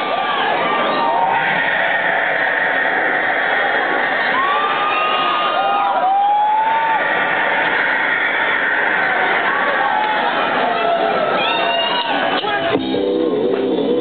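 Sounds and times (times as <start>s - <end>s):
crowd cheering: 0.0s - 14.0s
long held shouts: 4.2s - 12.7s.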